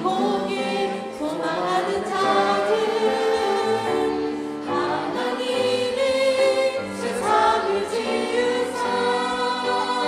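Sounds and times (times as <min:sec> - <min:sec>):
choir singing worship song: 0:00.0 - 0:10.0.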